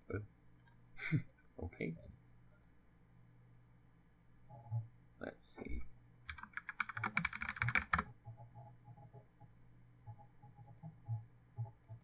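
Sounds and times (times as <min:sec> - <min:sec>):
keyboard typing: 0:06.3 - 0:12.0.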